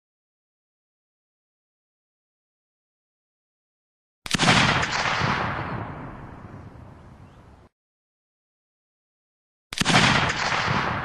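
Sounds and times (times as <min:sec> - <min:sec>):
gunshot with echo: 0:04.3 - 0:06.3, 0:09.8 - 0:11.0.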